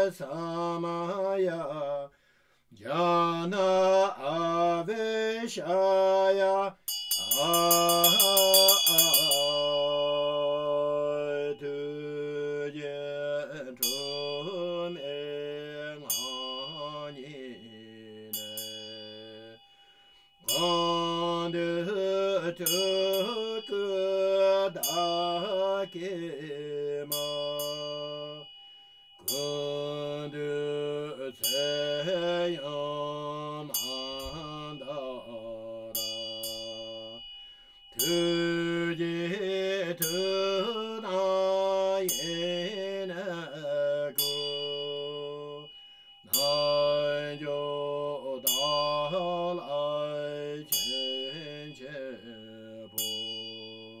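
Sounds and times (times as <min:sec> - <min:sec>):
person chanting a mantra: 0:00.0 - 0:02.1, 0:02.8 - 0:19.6, 0:20.4 - 0:28.5, 0:29.2 - 0:37.3, 0:38.0 - 0:45.7, 0:46.3 - 0:54.0
small bell struck: 0:06.9 - 0:10.3, 0:13.8 - 0:21.8, 0:22.5 - 0:26.0, 0:27.0 - 0:39.3, 0:39.9 - 0:54.0.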